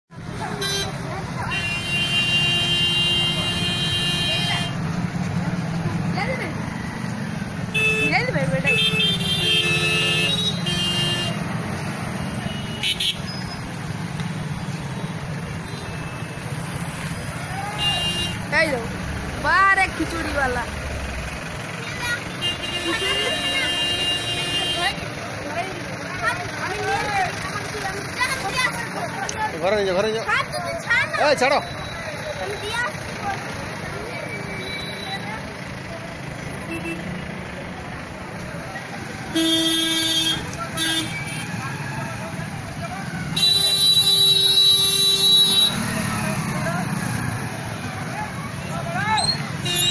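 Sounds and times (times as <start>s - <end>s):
crowd voices: 0.1s - 49.9s
engine rumble: 0.1s - 49.9s
vehicle horns blasting: 0.5s - 4.9s, 7.7s - 13.6s, 17.8s - 18.5s, 21.9s - 25.0s, 36.6s - 37.3s, 39.3s - 41.6s, 43.3s - 46.2s, 48.6s - 49.9s.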